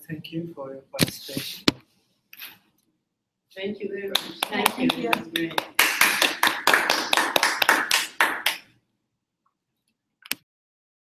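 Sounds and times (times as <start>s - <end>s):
audience applauding: 4.1s - 8.6s.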